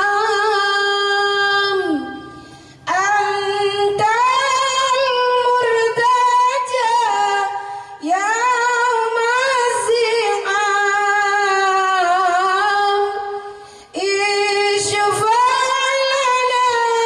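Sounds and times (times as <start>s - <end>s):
woman singing unaccompanied: 0.0s - 2.3s, 2.9s - 17.0s
singer breathing: 2.2s - 2.9s, 7.6s - 8.1s, 13.4s - 14.0s.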